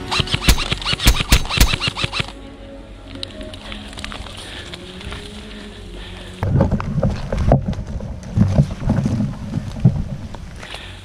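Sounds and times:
rumbling and knocking on microphone: 6.4s - 10.6s.

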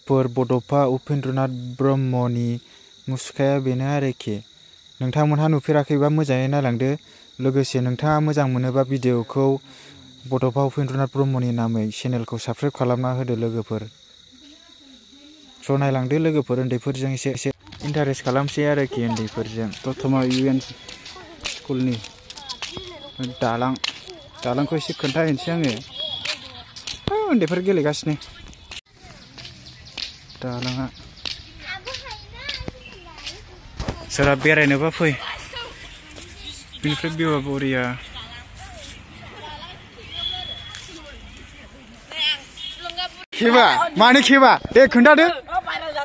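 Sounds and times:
high-pitched insect trill: 0.0s - 46.0s
children talking and calling: 13.8s - 46.0s
man speaking: 15.6s - 20.8s, 34.1s - 35.2s, 36.8s - 38.1s, 43.3s - 45.5s.

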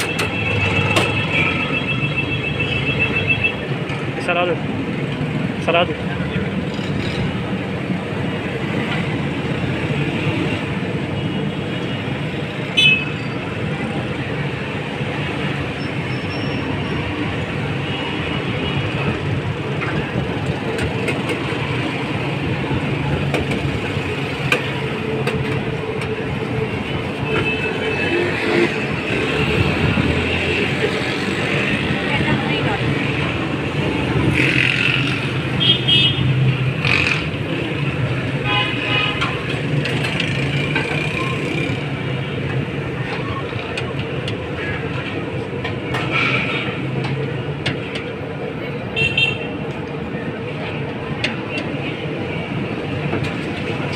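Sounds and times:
road traffic din: 0.0s - 53.9s
people's voices: 28.6s - 34.8s
car horns: 35.6s - 36.4s, 38.4s - 39.4s, 49.0s - 49.6s.

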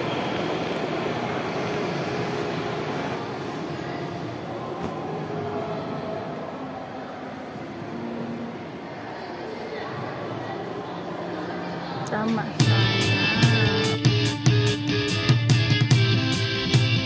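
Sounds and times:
crowd hubbub in large hall: 0.0s - 17.0s.

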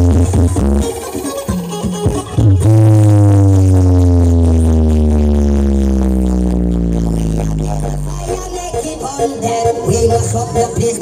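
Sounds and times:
loud electronic music: 0.0s - 11.0s
deep synth bass note sliding down: 2.5s - 9.1s.

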